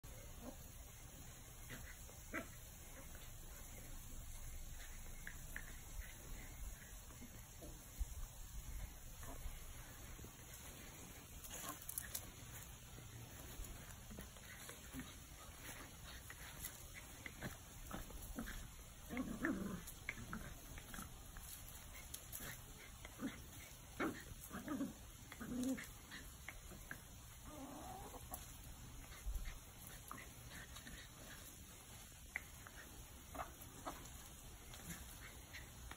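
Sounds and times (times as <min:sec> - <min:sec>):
puppy growling: 0:01.6 - 0:35.9.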